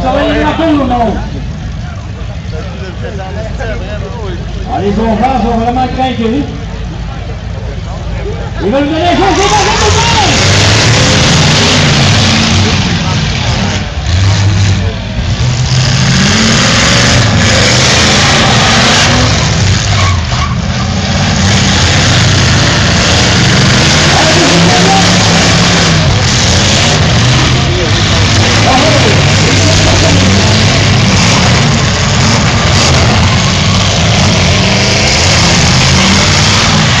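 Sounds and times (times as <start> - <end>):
car engines revving: 0.0 - 37.0.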